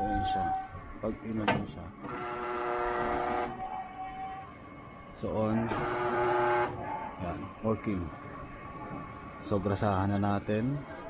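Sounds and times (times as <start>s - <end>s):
gate electric motor whine: 2.0s - 3.6s, 5.6s - 6.8s.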